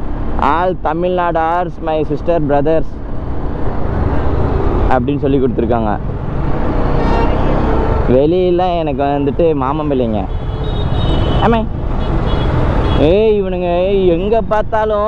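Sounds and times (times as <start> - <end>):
motorcycle wind and road noise: 0.0 - 15.0
man talking: 0.4 - 3.0, 4.9 - 6.0, 8.1 - 10.3, 11.4 - 11.8, 13.0 - 15.0.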